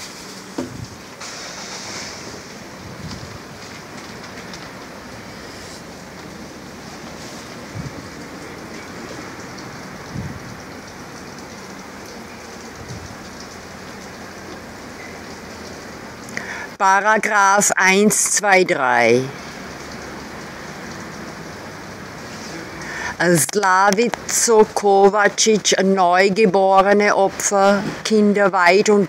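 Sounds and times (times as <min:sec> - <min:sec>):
steady outdoor hiss: 0:00.0 - 0:29.0.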